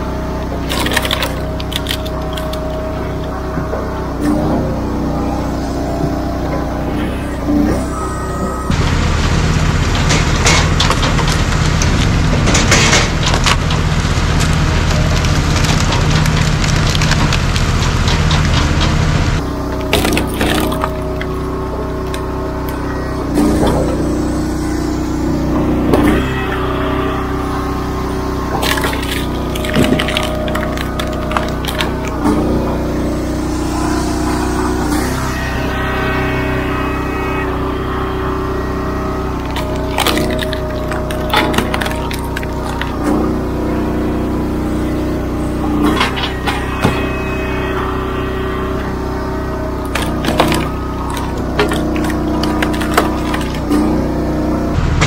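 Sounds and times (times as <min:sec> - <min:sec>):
excavator engine running: 0:00.0 - 0:55.0
log splitter engine running: 0:00.0 - 0:55.0
wood cracking sharply: 0:00.6 - 0:02.8, 0:10.1 - 0:21.4, 0:28.6 - 0:32.6, 0:39.3 - 0:43.3, 0:49.8 - 0:54.0.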